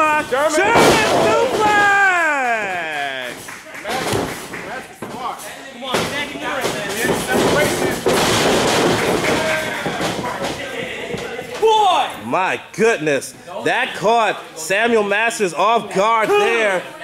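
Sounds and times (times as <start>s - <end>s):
crowd shouting and cheering: 0.0s - 4.2s.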